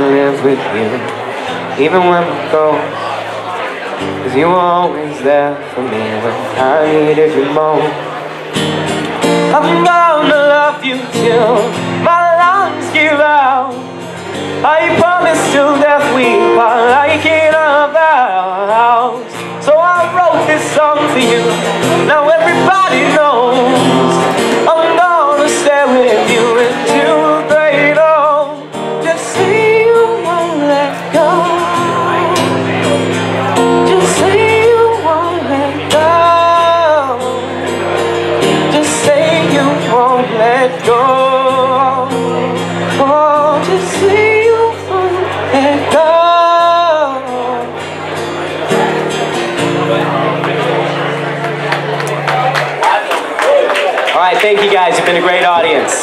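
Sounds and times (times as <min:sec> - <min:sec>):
man singing a love song: 0:00.0 - 0:03.2, 0:04.0 - 0:08.2, 0:09.2 - 0:48.1
strummed acoustic guitar: 0:00.0 - 0:53.4
voices: 0:00.0 - 0:56.0
scattered claps: 0:50.3 - 0:56.0.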